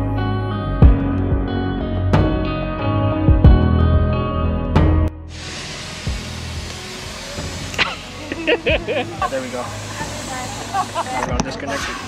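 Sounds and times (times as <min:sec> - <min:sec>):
steady hiss: 0:05.3 - 0:12.0.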